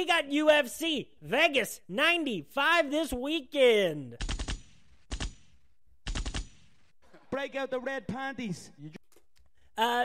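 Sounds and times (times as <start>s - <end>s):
machine-gun fire: 4.2s - 6.9s.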